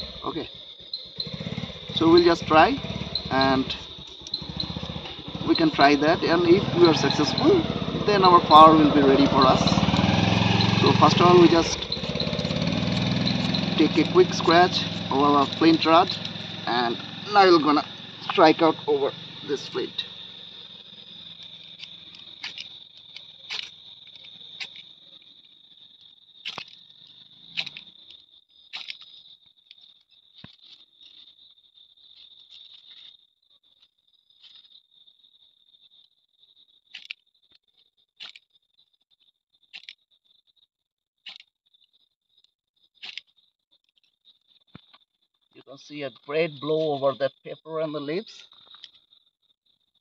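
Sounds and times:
high-pitched drone: 1.2 - 20.4.

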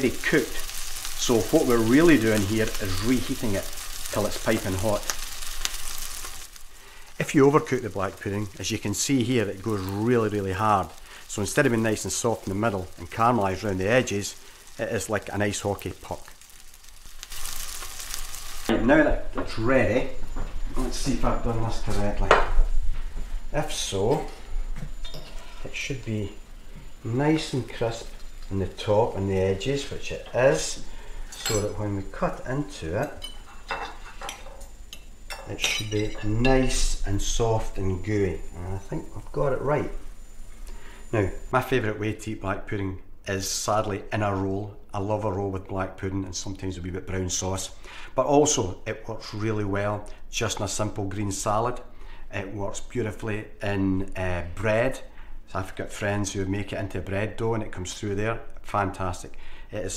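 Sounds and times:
sharp crackles: 0.0 - 18.7
sizzling in a frying pan: 0.0 - 18.7, 26.3 - 41.6.

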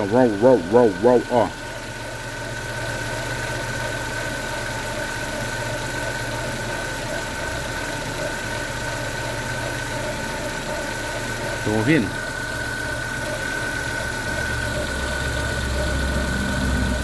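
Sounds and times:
car engine idling: 0.0 - 17.0
high whine of timing belt: 0.0 - 17.0.

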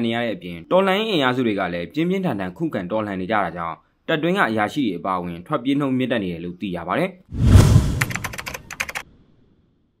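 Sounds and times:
keyboard key clicks: 8.0 - 9.0.

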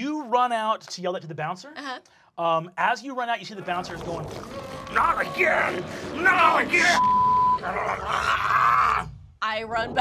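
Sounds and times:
censor bleep: 7.0 - 7.7.

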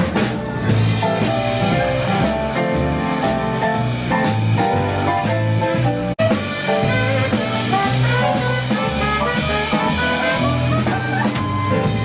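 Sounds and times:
steady drum beat: 0.0 - 12.0
swing band playing jazz: 0.0 - 12.0.

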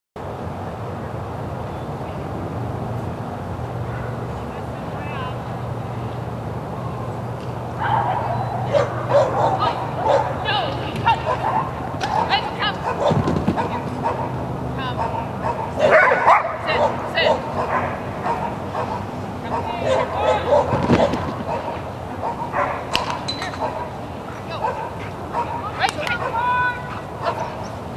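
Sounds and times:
dog barking and yipping: 7.8 - 27.7.

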